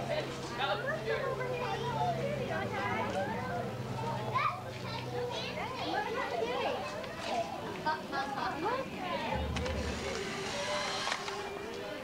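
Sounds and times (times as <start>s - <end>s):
children chattering and calling out: 0.0s - 12.0s
low hum: 9.3s - 11.8s.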